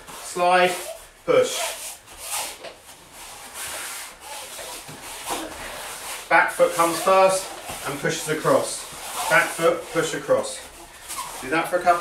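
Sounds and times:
feet shuffling across floor: 0.0 - 12.0.

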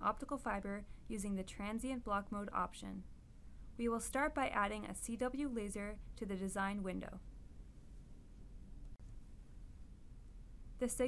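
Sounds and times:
background hiss and low hum: 0.0 - 11.0.

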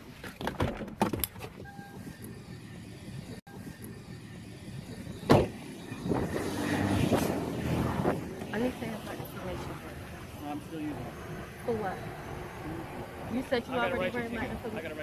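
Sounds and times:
car passing by: 5.8 - 15.0.

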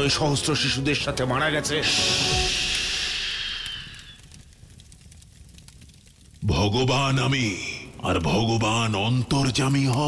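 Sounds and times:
bright hissing whoosh: 1.8 - 4.4.

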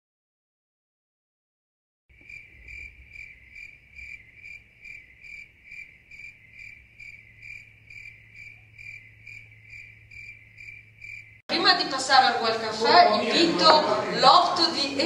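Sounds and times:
insect chirping: 2.1 - 11.4.

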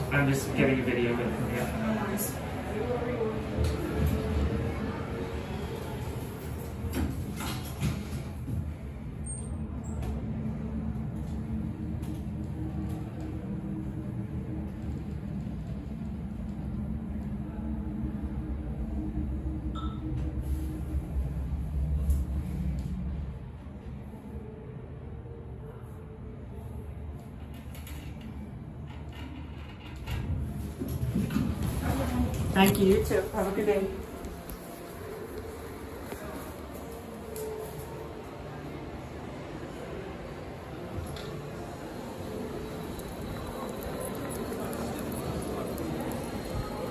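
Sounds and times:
elevator doors sliding: 0.0 - 17.8, 27.3 - 46.9
elevator car low rumble: 0.0 - 46.9
low hum of indoor space: 0.0 - 46.9.

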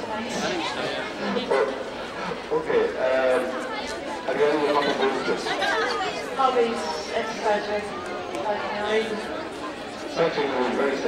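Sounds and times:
crowd chatter: 0.0 - 11.0
people talking: 0.0 - 11.0.

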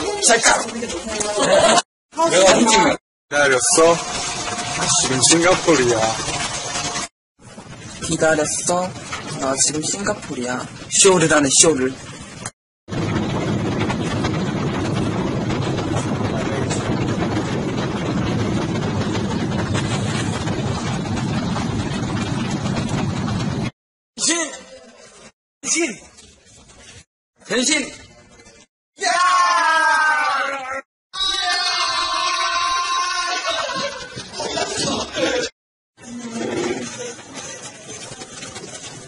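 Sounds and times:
vehicle interior rumbling: 12.9 - 23.7.

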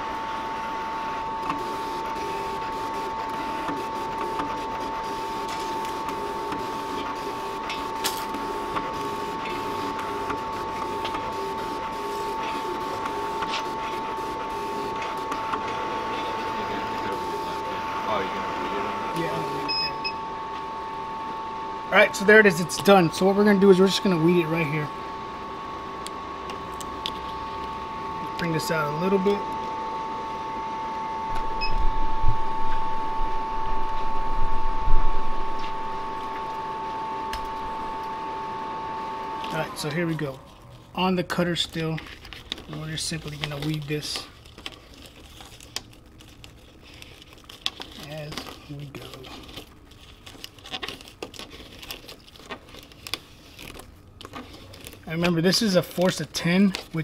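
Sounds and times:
high two-tone whine: 0.0 - 40.4
vinyl peeling with crinkling: 1.0 - 17.7, 32.7 - 57.0
small crackles: 41.8 - 55.4.

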